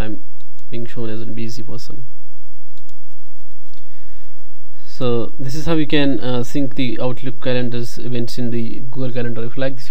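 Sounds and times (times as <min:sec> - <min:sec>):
steady low hum: 0:00.0 - 0:09.9
computer mouse clicking: 0:02.8 - 0:03.0.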